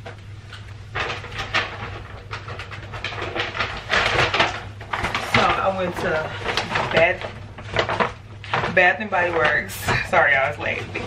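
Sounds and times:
paper bags rustling: 0.5s - 11.0s.

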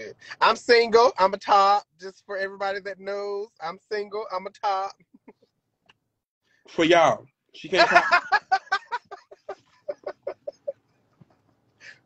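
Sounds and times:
man laughing: 7.7s - 12.0s.

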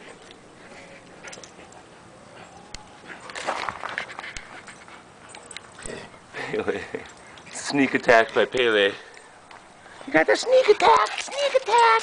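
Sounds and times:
dogs play-wrestling on grass: 0.0s - 12.0s.

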